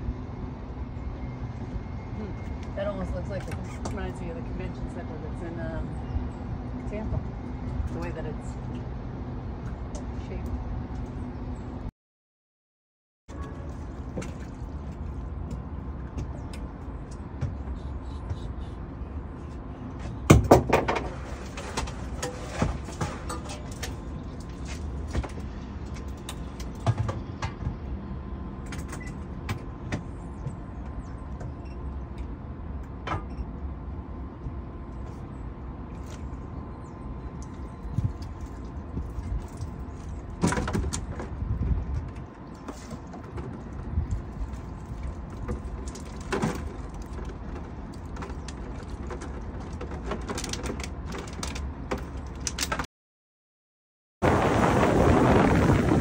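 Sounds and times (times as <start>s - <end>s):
boat motor rumbling: 0.0s - 11.9s, 13.3s - 52.5s
hull knocks and clatters: 38.0s - 52.8s.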